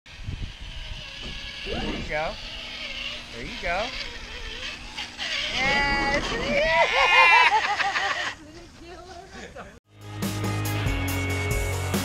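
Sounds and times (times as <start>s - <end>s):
electric motor and gear whine: 0.1s - 8.2s.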